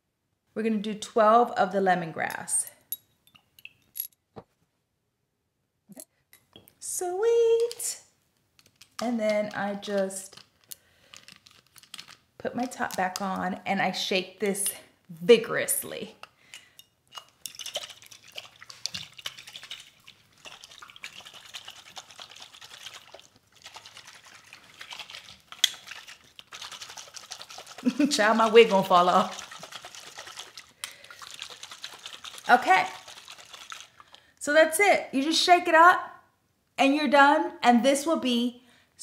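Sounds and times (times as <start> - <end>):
spray bottle rattling when shaken: 17.1 - 34.2
oil sloshing in bottle: 17.2 - 34.2.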